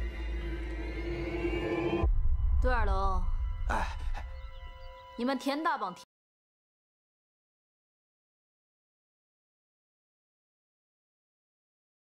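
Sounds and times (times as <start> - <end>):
deep rumble: 0.0 - 4.9.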